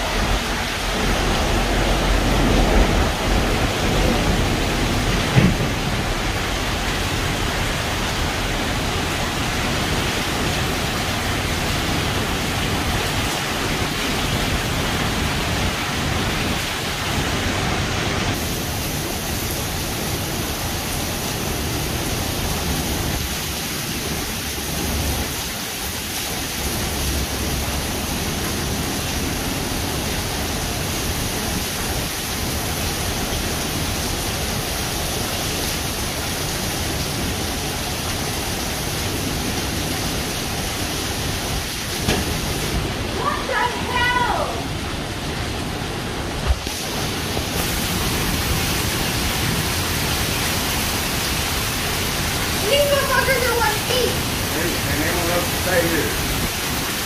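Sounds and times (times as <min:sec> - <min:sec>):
heavy rain on pavement: 0:00.0 - 0:57.0.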